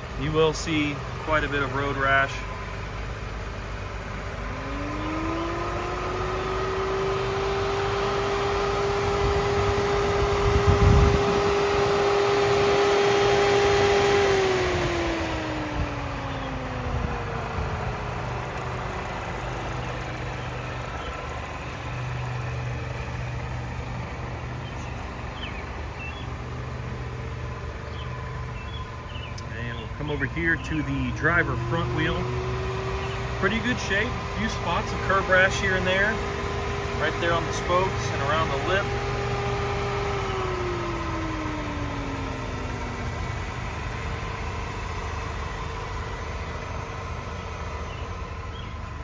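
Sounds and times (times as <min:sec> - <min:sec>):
engine revving: 0:00.0 - 0:49.0
steady low hum: 0:00.0 - 0:49.0.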